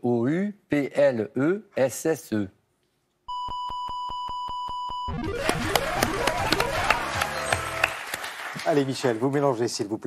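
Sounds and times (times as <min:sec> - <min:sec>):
electronic beep with rapid ticks: 0:03.3 - 0:07.2
music jingle with drums: 0:05.1 - 0:07.8
studio applause: 0:05.1 - 0:09.7.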